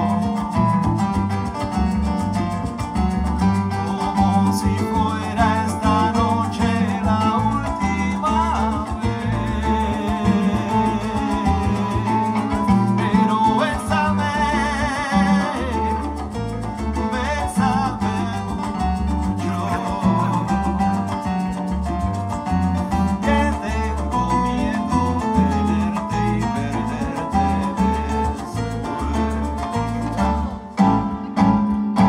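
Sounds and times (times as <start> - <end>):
electric keyboard: 0.0 - 4.9, 15.4 - 32.0
bass guitar: 0.0 - 32.0
hand percussion: 0.0 - 32.0.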